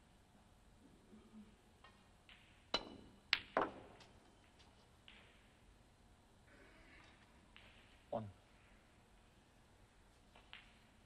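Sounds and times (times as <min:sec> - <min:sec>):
snooker balls clacking: 0:01.9 - 0:05.6, 0:07.5 - 0:08.0
cue striking ball: 0:02.3 - 0:04.0.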